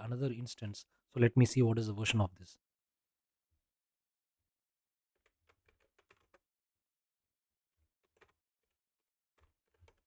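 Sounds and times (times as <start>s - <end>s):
keyboard typing: 5.2s - 6.4s.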